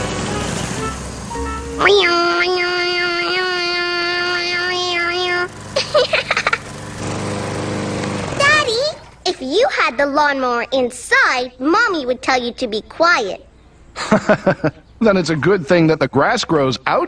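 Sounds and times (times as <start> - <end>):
electric lawn mower running: 0.0 - 9.2
child calling out: 1.8 - 5.5.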